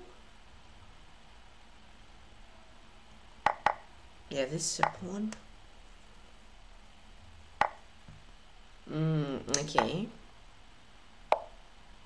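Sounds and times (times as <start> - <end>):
wooden chess piece click: 3.5 - 3.8.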